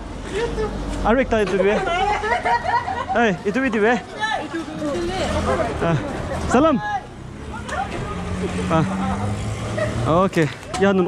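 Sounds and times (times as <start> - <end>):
vehicle engine hum passing: 4.7 - 10.6.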